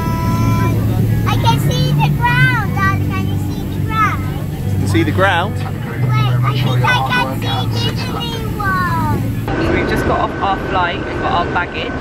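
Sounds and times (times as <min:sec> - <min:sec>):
airliner cabin hum: 0:00.0 - 0:09.5.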